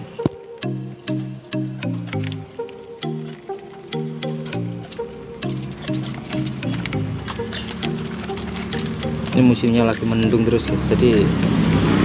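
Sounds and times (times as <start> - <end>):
melody of short notes: 0.0 - 12.0.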